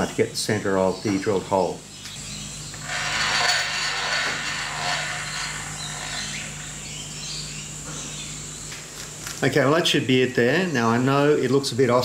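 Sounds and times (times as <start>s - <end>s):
milling machine motor hum: 2.2s - 8.5s
rushing whirring noise: 2.6s - 7.5s.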